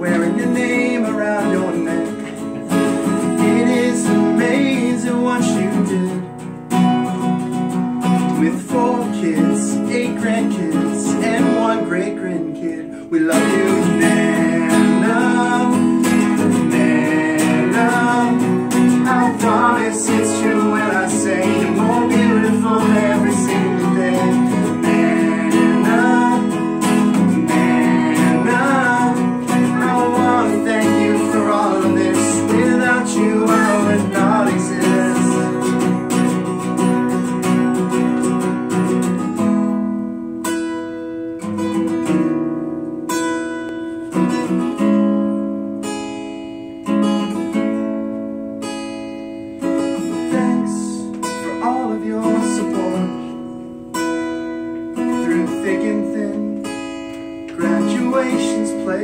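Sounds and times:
acoustic guitar strumming: 0.0s - 59.0s
people singing along: 13.3s - 36.3s.

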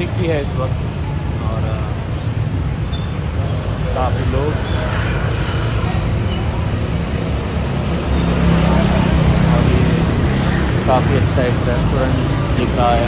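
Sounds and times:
cars and motor scooters passing: 0.0s - 13.0s
steady engine hum: 0.0s - 13.0s.

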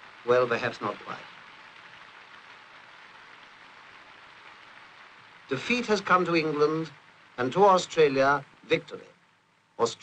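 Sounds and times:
faint film soundtrack hiss: 0.0s - 10.0s.

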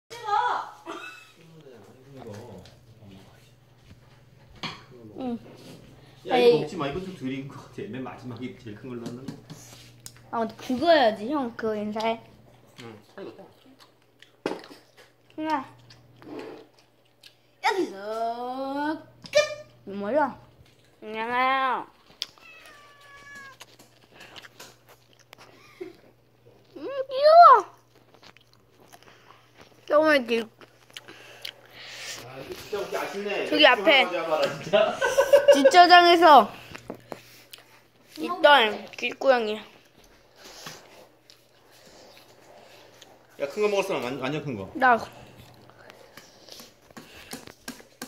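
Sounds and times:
cat meowing: 22.4s - 23.7s.

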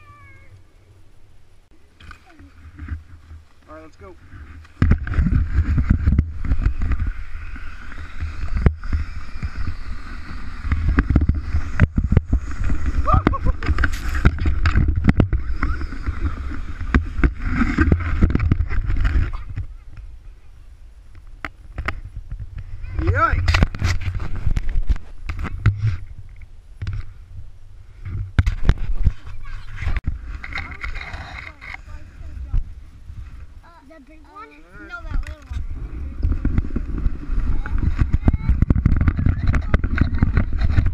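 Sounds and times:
child squealing: 0.0s - 0.6s
sleds scraping on snow: 2.2s - 20.0s, 21.9s - 26.1s, 27.9s - 40.9s
wind on microphone: 4.2s - 40.9s
person whooping: 13.0s - 13.6s
person laughing: 13.0s - 13.8s
sled jolt: 28.0s - 40.9s.

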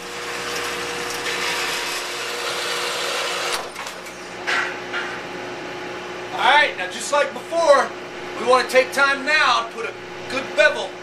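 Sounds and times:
bandsaw cutting metal bar: 0.0s - 3.8s
bandsaw motor hum: 0.0s - 4.4s.

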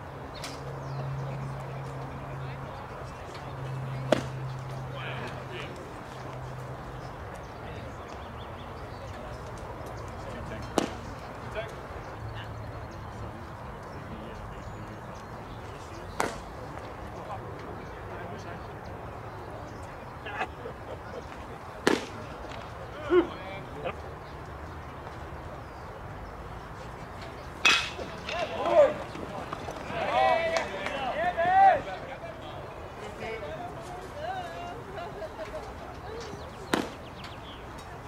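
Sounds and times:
outdoor ballpark background noise: 0.0s - 38.0s
baseball smacking into mitt: 4.1s - 4.4s, 10.8s - 11.0s, 16.2s - 16.5s, 21.8s - 22.2s, 27.6s - 28.8s, 36.7s - 37.0s
players shouting: 27.3s - 35.3s
metal bat hitting ball: 27.6s - 28.7s.

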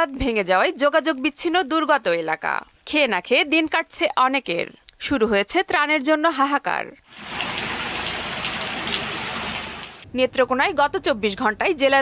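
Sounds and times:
rain: 7.0s - 10.1s
floodwater washing around truck: 7.1s - 10.0s
rushing water: 7.1s - 10.0s.

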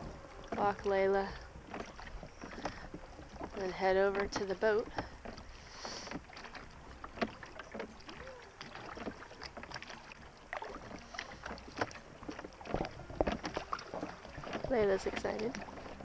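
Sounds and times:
wind on microphone: 0.0s - 5.4s
oars knocking in oarlocks: 0.0s - 16.0s
water lapping against hull: 0.0s - 16.0s.

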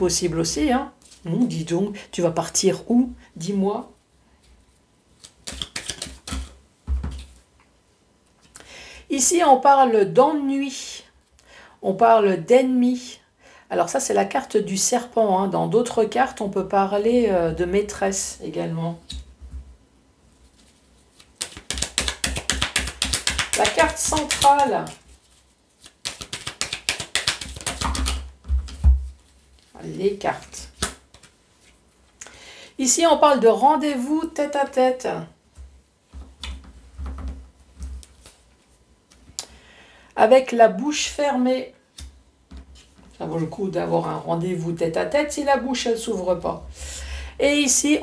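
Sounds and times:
cards clicking and tapping: 5.2s - 6.5s, 21.2s - 24.7s, 25.8s - 28.8s.

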